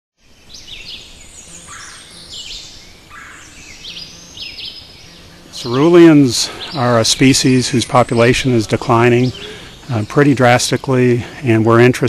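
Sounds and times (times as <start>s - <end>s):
birds singing and chirping: 0.2s - 12.0s
low background noise: 0.2s - 12.0s.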